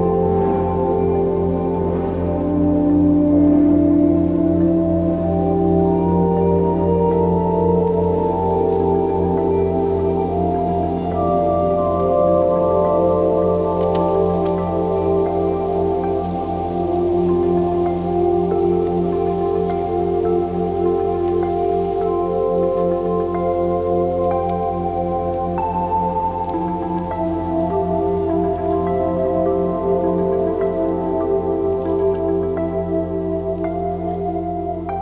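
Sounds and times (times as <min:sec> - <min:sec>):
ambient music with held chords: 0:00.0 - 0:35.0
twigs crackling: 0:00.0 - 0:35.0.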